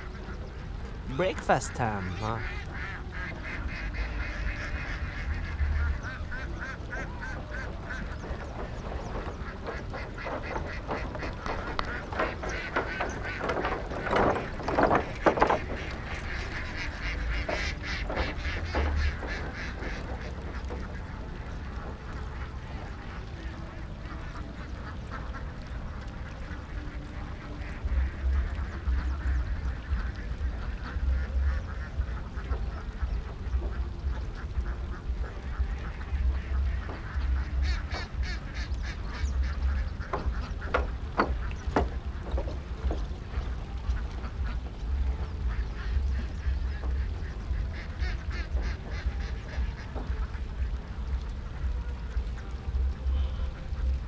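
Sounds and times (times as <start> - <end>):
ducks quacking: 0.0 - 54.0.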